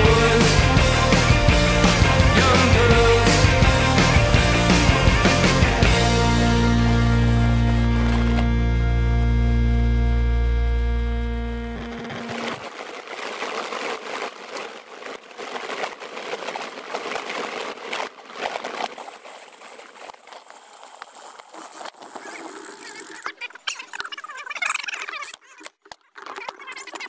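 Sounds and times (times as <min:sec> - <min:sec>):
bicycle riding rushing hiss: 0:00.4 - 0:09.8.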